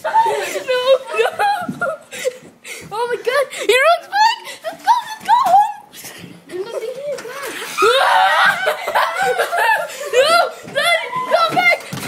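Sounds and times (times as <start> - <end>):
people laughing and snickering: 0.0 - 6.2, 6.8 - 12.0.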